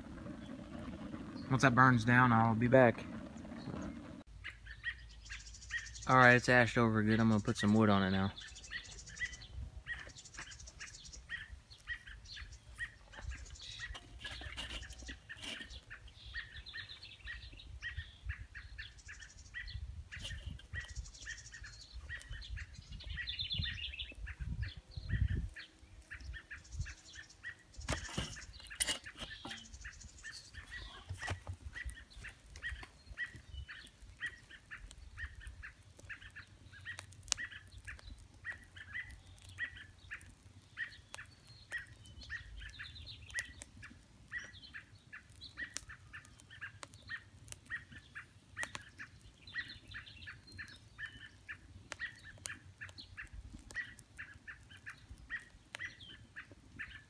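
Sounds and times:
birds chirping: 0.0 - 57.0
log knocking on charcoal: 13.1 - 15.9, 27.8 - 35.0.

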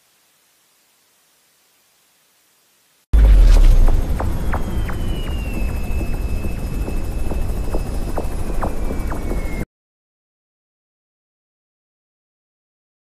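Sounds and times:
aircraft rumble in flight: 3.2 - 9.6
high whine sliding down: 3.2 - 9.6.

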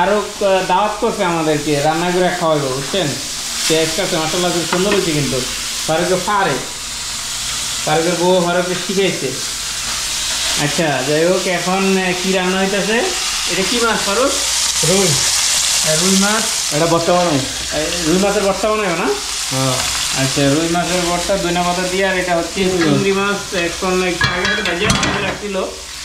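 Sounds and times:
voices talking: 0.0 - 6.8, 10.6 - 25.7
food sizzling in a wok: 0.0 - 26.0.

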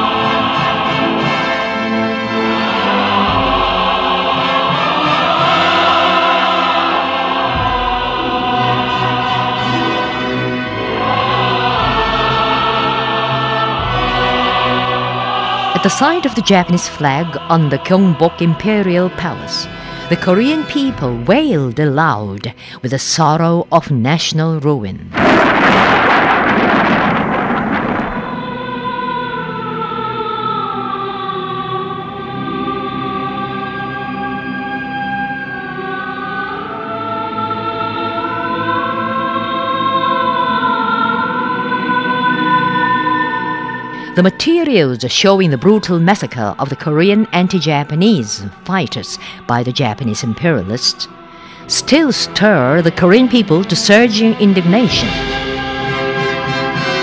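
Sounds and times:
choir singing long held notes: 0.0 - 21.0, 25.2 - 57.0.

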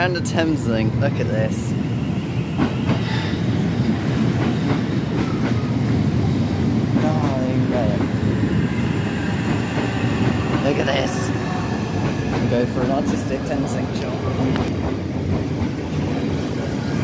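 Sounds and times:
train wheels rumbling on rails: 0.0 - 17.0.

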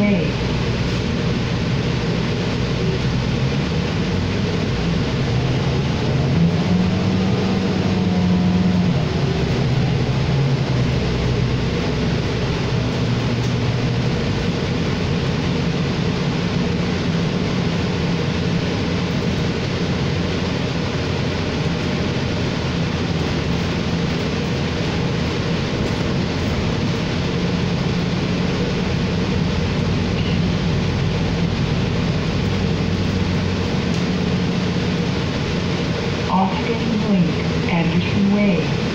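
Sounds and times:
bus engine drone: 0.0 - 38.9
road and tyre noise: 0.0 - 38.9.

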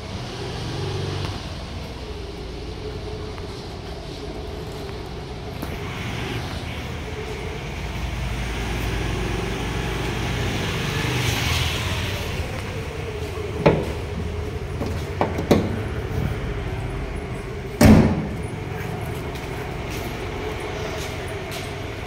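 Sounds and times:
diesel engine idling: 0.0 - 22.0
car bonnet slamming: 17.8 - 18.4.

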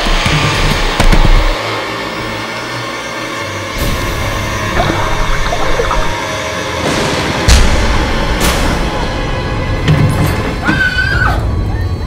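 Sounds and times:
low rumbling drone: 3.6 - 6.9.

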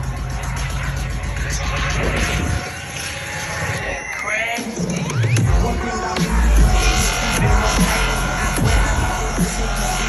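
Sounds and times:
dubstep music through sound system: 0.0 - 10.0
rushing noisy synth build: 0.0 - 10.0.

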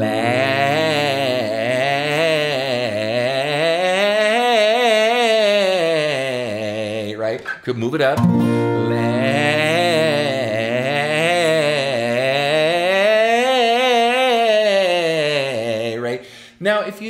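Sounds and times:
man singing a scale: 0.0 - 17.0
acoustic guitar chord ringing: 8.2 - 10.6.

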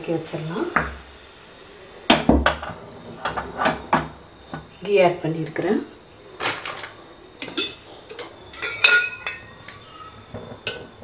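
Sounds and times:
steel utensils clinking: 6.4 - 9.8.

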